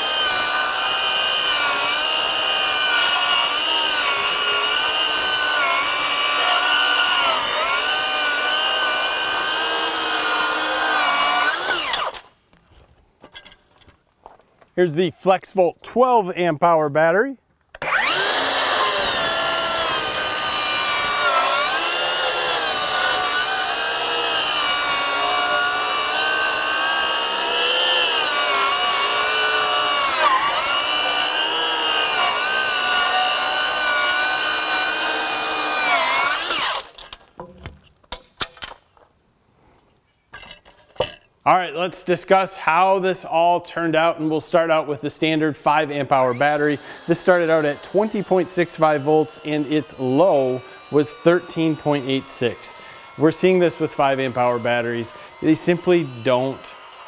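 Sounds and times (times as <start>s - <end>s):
circular saw cutting wood: 0.0s - 12.3s, 17.8s - 37.2s, 46.0s - 57.0s
saw blade spinning down: 0.0s - 12.3s, 17.8s - 37.2s, 46.1s - 57.0s.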